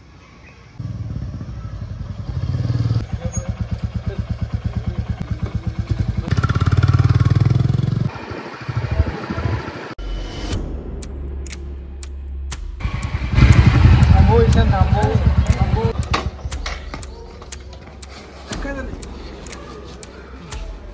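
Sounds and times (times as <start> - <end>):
motorcycle engine passing: 0.8 - 10.0, 12.8 - 17.2.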